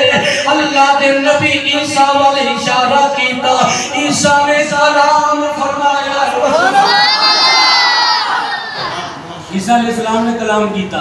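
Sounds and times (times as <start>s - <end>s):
crowd calling in unison: 6.4s - 9.3s.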